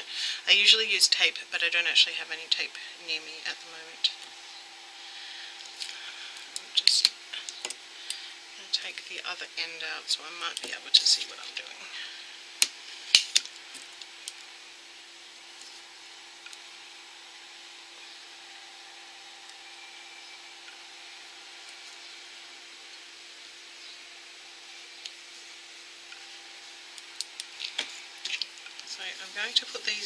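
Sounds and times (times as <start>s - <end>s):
low hum: 0.0s - 30.0s.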